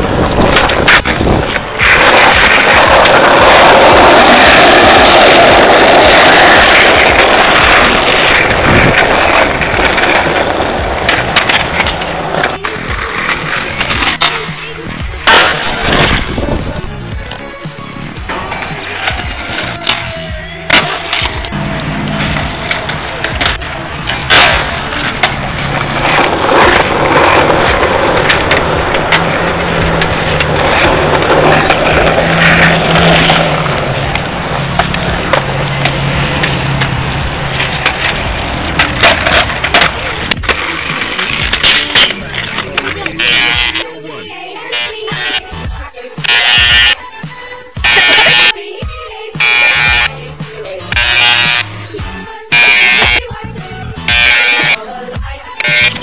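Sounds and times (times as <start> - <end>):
background music: 0.0 - 56.0
skateboard wheels rolling on asphalt: 0.0 - 56.0
skateboard wooden clacks: 0.1 - 17.4, 18.3 - 43.8.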